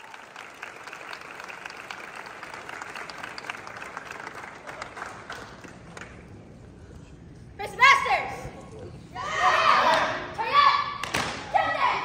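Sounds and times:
young people shouting calls: 9.1 - 12.0.

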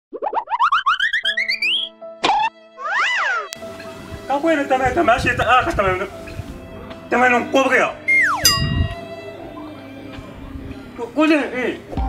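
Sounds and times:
rising cartoon chirps: 0.1 - 2.0, 8.1 - 8.8
held music notes: 3.5 - 12.0.

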